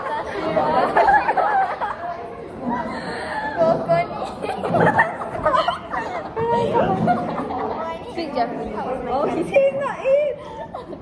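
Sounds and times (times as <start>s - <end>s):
chatter of young voices: 0.0s - 11.0s.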